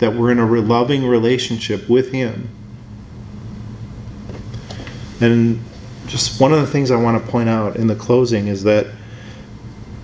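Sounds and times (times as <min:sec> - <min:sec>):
faint room rumble: 0:00.0 - 0:10.0
steady low hum: 0:00.0 - 0:10.0.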